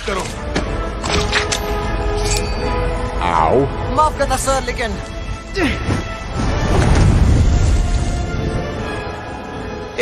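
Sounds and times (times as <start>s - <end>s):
film music: 0.0s - 10.0s.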